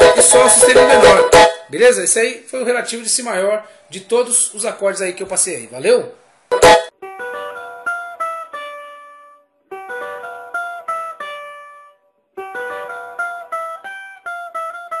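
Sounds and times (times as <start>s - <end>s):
plucked cavaquinho melody: 0.0s - 1.7s, 6.5s - 15.0s.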